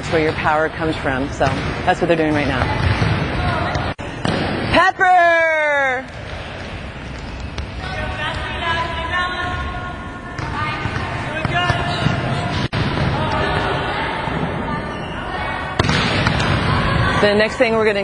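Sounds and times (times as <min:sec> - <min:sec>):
volleyballs being hit: 0:00.0 - 0:04.8, 0:05.9 - 0:08.9, 0:10.3 - 0:14.6, 0:15.7 - 0:17.2.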